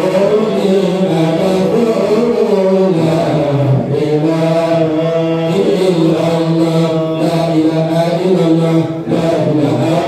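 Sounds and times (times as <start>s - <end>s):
men chanting prayer through pa: 0.0s - 10.0s.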